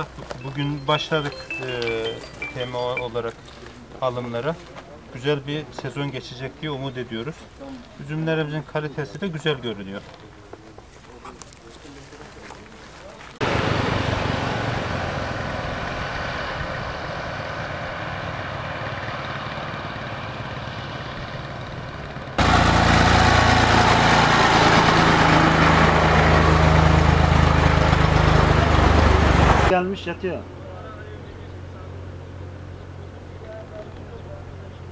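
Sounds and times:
tractor diesel engine idling: 13.4 - 29.8.

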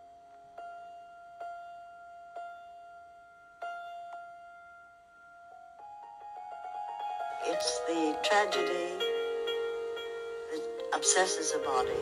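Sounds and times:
quiet piano notes: 0.0 - 12.0.

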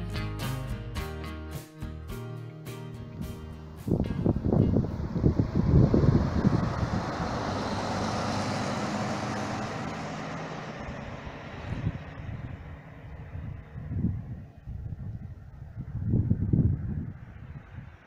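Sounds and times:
coach driving past: 2.7 - 14.6.

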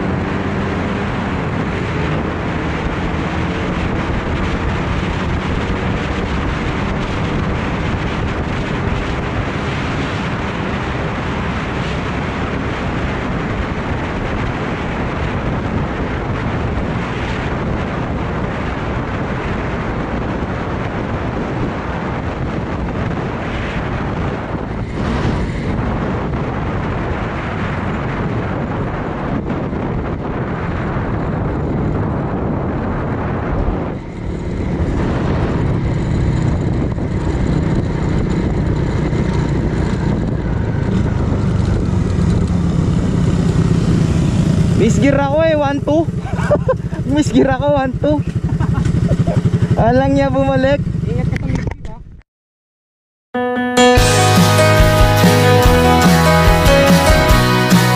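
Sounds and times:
motorcycle engine running: 0.0 - 52.0
wind noise: 0.0 - 52.2.

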